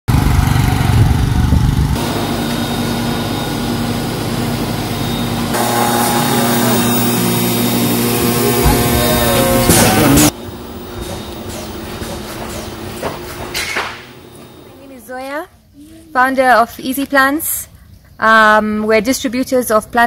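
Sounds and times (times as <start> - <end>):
small motorcycle engine running: 0.1 - 10.3
seeding machine humming: 0.1 - 13.4.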